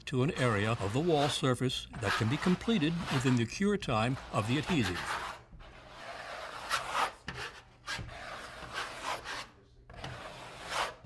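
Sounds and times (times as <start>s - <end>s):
trowel scraping adhesive on wall: 0.2s - 11.0s.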